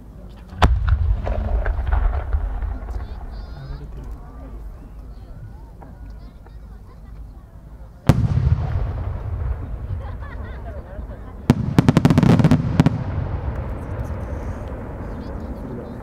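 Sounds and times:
firework shell bang: 0.5 - 3.5
rapid firework pops: 0.5 - 4.2, 11.5 - 15.0
rumbling echo: 0.5 - 5.7, 8.1 - 16.0.

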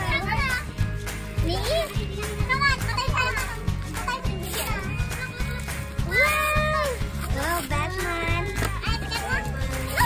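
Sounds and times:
background music: 0.0 - 10.0
young children chattering: 1.4 - 10.0
wrapping paper tearing: 6.2 - 7.7.

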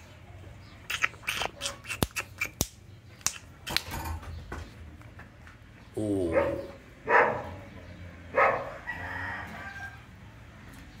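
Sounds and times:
dog barks: 6.2 - 7.6, 8.3 - 8.9
rooster crowing: 8.6 - 10.2.

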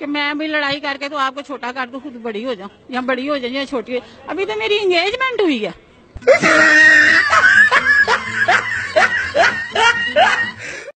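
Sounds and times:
loud laughter: 6.2 - 10.9.

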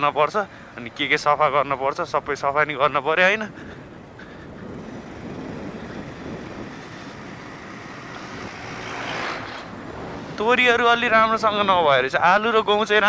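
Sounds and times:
motorcycle wind and road noise: 0.0 - 13.0.

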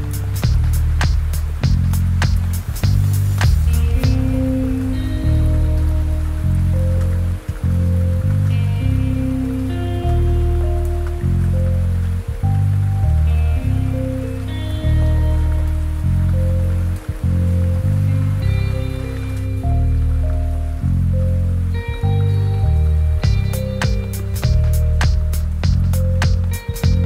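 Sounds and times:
lofi hip-hop music: 0.0 - 27.0
steady rain: 0.0 - 27.0.

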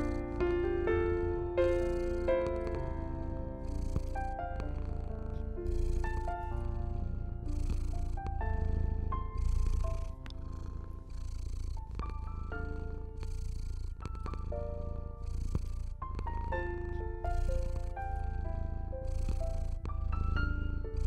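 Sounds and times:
cat purring: 0.0 - 21.0
soft piano music: 0.0 - 21.0.

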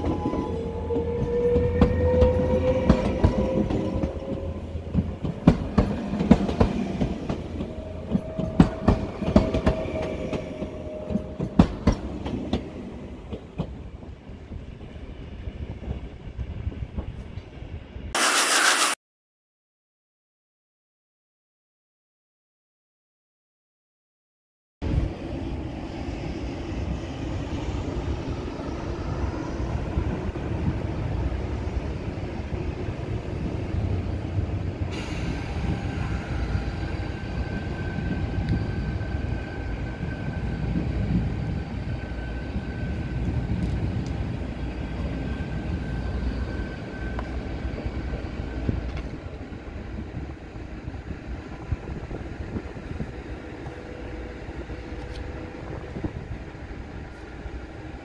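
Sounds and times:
train wheels rumbling on track: 0.0 - 18.8, 24.8 - 58.0
high whine of train: 0.0 - 19.0, 24.8 - 58.0.

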